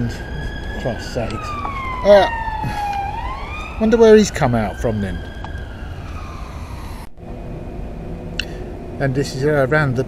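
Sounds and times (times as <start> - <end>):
distant siren-like falling tone: 0.0 - 9.0
street traffic rumble: 0.0 - 10.0.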